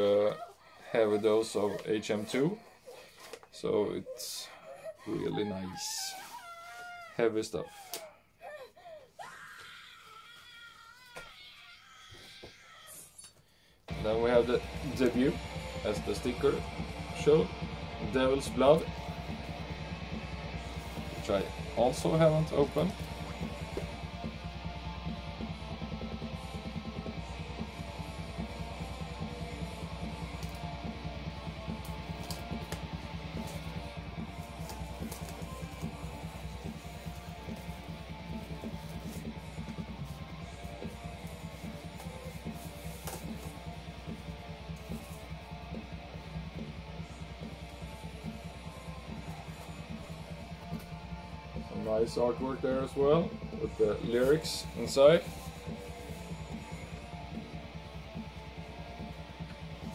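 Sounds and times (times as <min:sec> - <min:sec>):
metal music from a record: 0:00.0 - 0:03.7, 0:13.9 - 0:59.9
record sleeve crinkling: 0:30.2 - 0:45.5.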